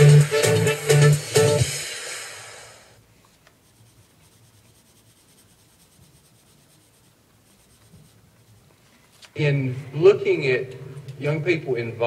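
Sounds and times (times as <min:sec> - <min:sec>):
pencil scratching on paper: 0:03.5 - 0:08.7.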